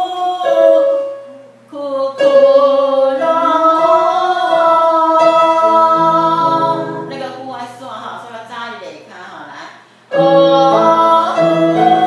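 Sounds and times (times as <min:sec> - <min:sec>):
woman singing slow melody: 0:00.0 - 0:07.4, 0:10.1 - 0:12.0.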